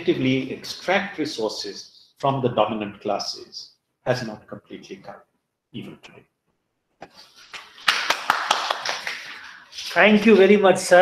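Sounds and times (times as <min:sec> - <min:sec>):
small group applauding: 0:07.4 - 0:10.0.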